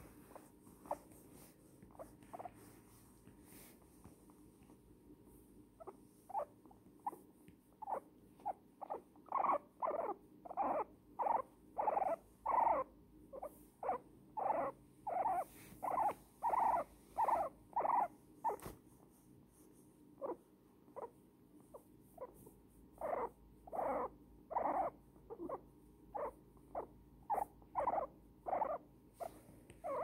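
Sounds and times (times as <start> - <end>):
guinea pig squeaking: 0.0 - 2.7, 5.8 - 18.8, 20.2 - 30.0.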